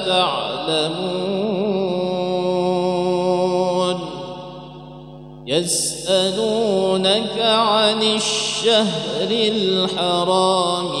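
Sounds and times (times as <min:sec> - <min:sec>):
man reciting melodically: 0:00.0 - 0:11.0.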